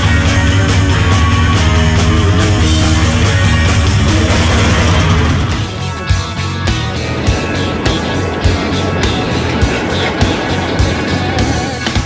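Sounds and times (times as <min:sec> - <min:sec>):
rock band music: 0:00.0 - 0:12.0
steady drum beat: 0:00.0 - 0:12.0.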